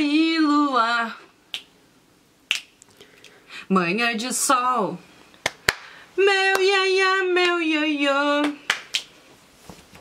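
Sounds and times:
woman singing: 0:00.0 - 0:01.4, 0:03.7 - 0:05.0, 0:06.2 - 0:08.8
finger snaps: 0:01.5 - 0:01.7, 0:02.5 - 0:03.4.

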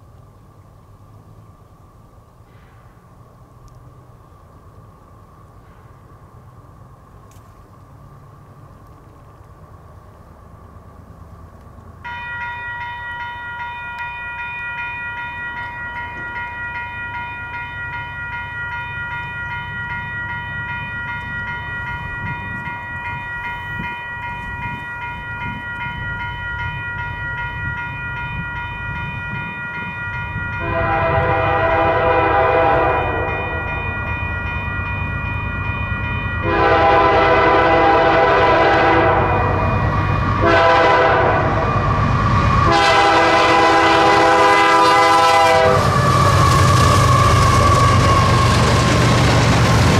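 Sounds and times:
diesel train rumble: 0:00.0 - 0:49.9
level crossing warning bells: 0:12.0 - 0:49.6
locomotive horn blasts: 0:30.6 - 0:33.7, 0:36.4 - 0:39.8, 0:40.4 - 0:41.8, 0:42.6 - 0:46.2.

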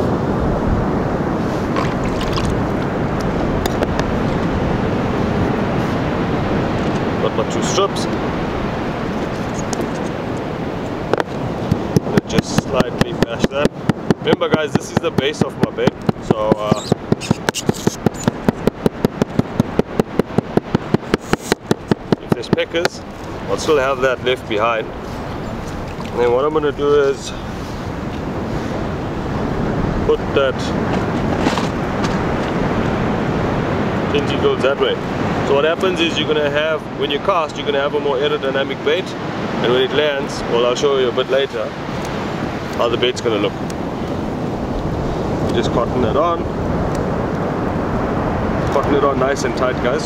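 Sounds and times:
surf: 0:00.0 - 0:50.0
wind: 0:00.0 - 0:50.0
sharp knocks: 0:16.0 - 0:23.0.

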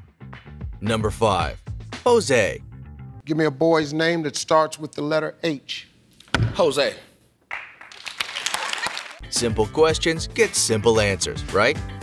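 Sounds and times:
group of people clapping: 0:07.5 - 0:09.2.

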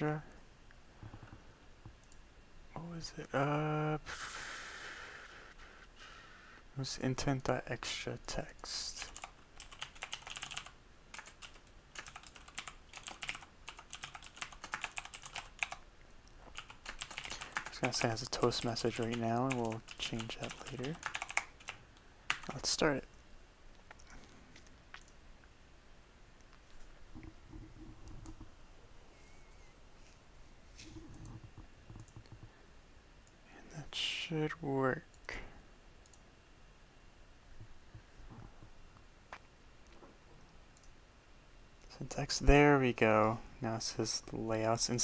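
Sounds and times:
computer keyboard typing: 0:09.0 - 0:15.8, 0:16.5 - 0:22.7.

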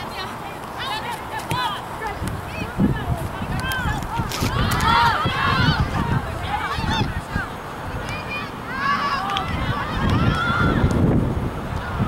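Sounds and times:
distant voices shouting: 0:00.0 - 0:12.0.

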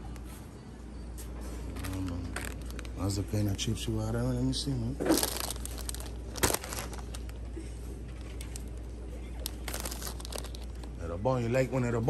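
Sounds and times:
low steady hum: 0:00.0 - 0:12.0
plastic bags crinkling: 0:01.7 - 0:03.6, 0:05.0 - 0:11.0.

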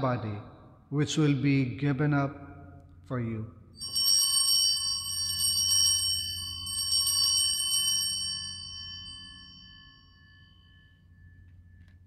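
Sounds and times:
altar bells ringing: 0:03.7 - 0:12.0.

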